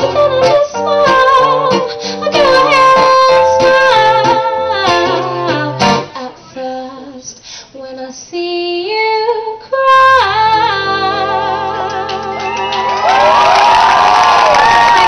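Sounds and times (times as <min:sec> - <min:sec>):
guitar accompaniment: 0:00.0 - 0:06.4, 0:10.2 - 0:13.4
woman singing into a microphone: 0:00.0 - 0:12.8.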